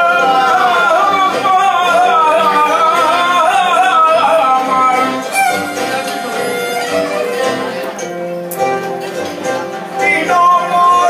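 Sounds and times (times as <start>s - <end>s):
man singing: 0.0s - 7.8s, 9.8s - 11.0s
string ensemble accompaniment: 0.0s - 11.0s.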